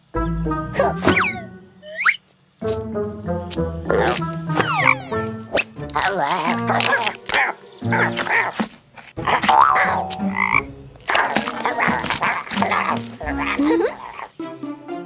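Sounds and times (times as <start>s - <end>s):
comic sound effects: 0.7s - 2.8s, 3.9s - 5.2s, 9.2s - 14.2s
cartoon frog croaking: 0.8s - 2.8s, 3.5s - 14.4s.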